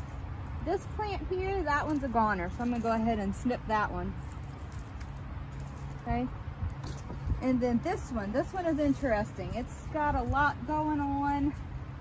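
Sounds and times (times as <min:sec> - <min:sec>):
steady low rumble: 0:00.0 - 0:12.0.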